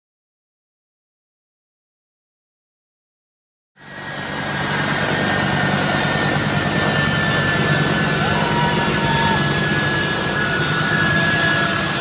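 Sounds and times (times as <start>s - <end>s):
high engine whine: 3.8s - 12.0s
jet engines running: 3.8s - 12.0s.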